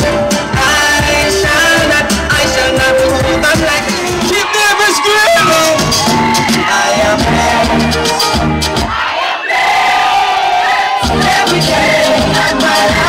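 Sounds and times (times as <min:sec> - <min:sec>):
party music with bass beat: 0:00.0 - 0:09.2, 0:10.9 - 0:13.0
crowd singing and shouting: 0:00.0 - 0:13.0.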